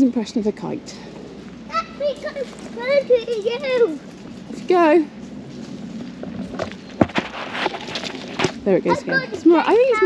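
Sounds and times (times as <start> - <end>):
footsteps on leaf litter: 1.5 - 9.6.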